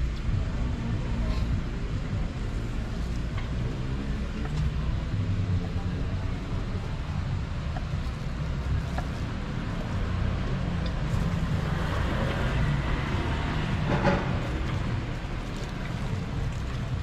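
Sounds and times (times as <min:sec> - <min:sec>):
low rumble of street ambience: 0:00.0 - 0:17.0.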